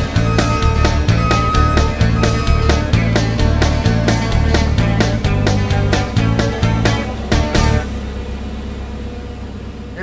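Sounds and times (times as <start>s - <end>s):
music with steady beat: 0.0s - 8.0s
low hum: 0.0s - 10.0s.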